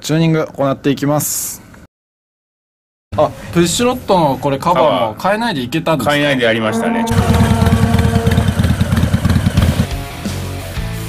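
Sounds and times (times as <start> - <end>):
motorcycle engine idling: 7.1 - 10.1.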